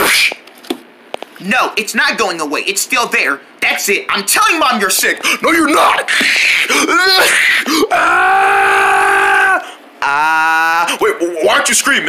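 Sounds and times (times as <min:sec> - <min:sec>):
person wailing: 0:05.4 - 0:11.2
person yelping: 0:05.4 - 0:11.2.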